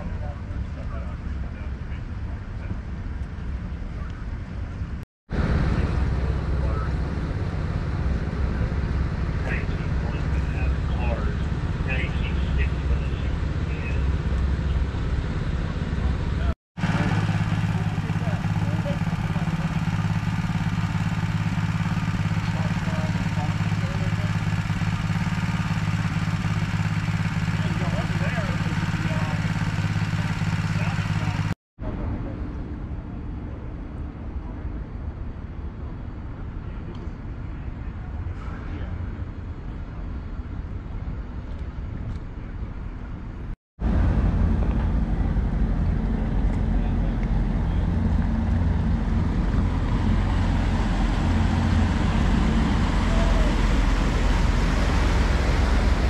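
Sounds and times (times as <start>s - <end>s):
engine humming: 0.0s - 56.0s
faint voices: 8.2s - 32.5s, 46.0s - 56.0s.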